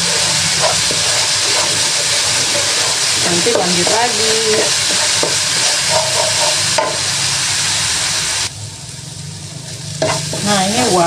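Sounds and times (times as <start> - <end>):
wooden spatula scraping wok: 0.0 - 7.4, 9.6 - 11.0
paste sizzling in oil: 0.0 - 8.5.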